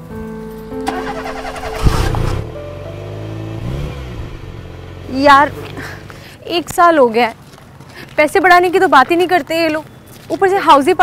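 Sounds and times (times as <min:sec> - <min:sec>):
background music with held notes: 0:00.0 - 0:04.7
car engine starting and running: 0:00.8 - 0:06.4.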